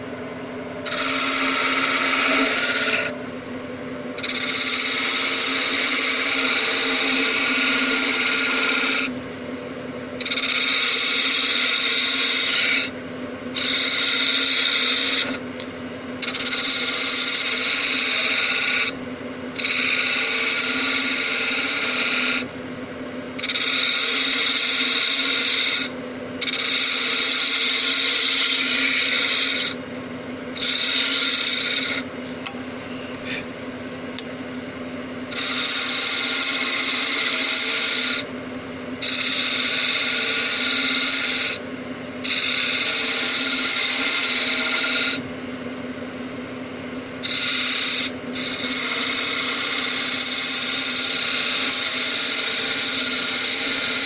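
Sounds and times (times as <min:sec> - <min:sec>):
lathe motor humming: 0:00.7 - 0:54.0
turning tool cutting spinning wood: 0:00.8 - 0:03.4, 0:04.1 - 0:09.3, 0:10.1 - 0:33.6, 0:35.0 - 0:54.0.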